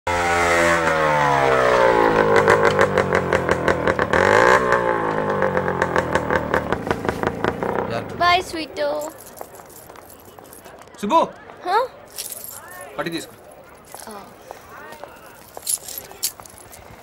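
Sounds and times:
motorcycle engine running: 0.1 - 10.1.

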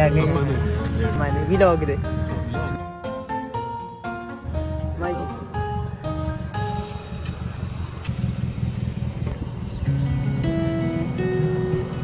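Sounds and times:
car engine idling: 4.4 - 12.0.

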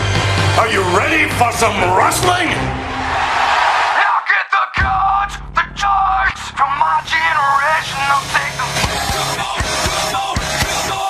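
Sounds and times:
rock music with wavering vocal: 4.0 - 11.0.

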